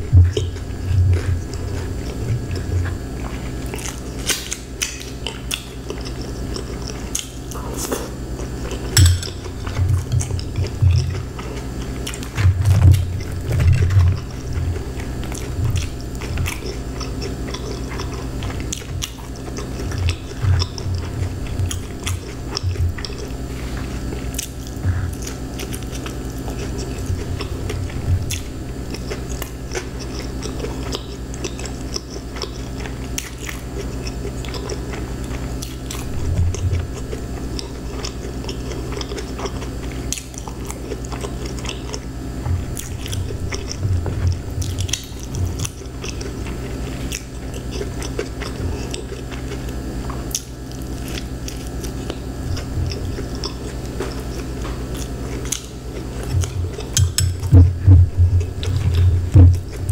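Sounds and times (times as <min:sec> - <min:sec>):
chewing coleslaw: 0:00.0 - 0:59.9.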